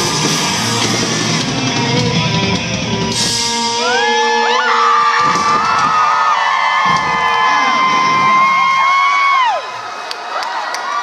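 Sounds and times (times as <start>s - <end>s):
crowd cheering and whooping: 0.0s - 1.4s, 3.1s - 11.0s
heavy drum hits: 6.8s - 8.6s.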